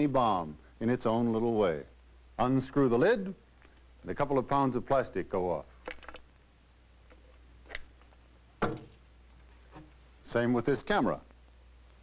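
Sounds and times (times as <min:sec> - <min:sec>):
canteen knocking on shelf: 0:08.6 - 0:08.9.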